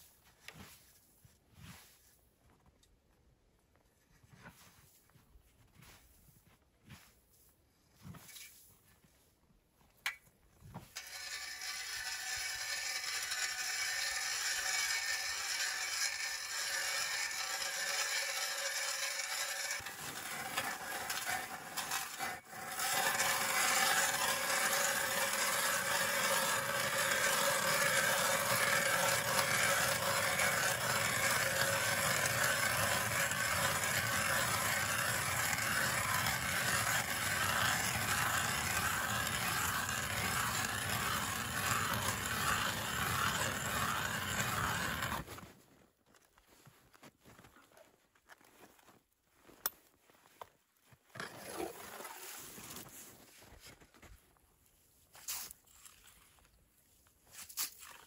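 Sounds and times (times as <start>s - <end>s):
hand ice auger boring ice: 10.1s - 45.5s, 51.1s - 53.8s, 55.1s - 56.6s, 57.3s - 58.0s.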